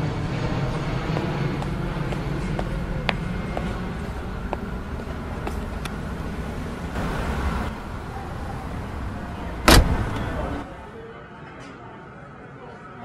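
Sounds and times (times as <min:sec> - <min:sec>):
low background rumble: 0:00.0 - 0:10.9
car boot lid slamming: 0:09.6 - 0:10.6.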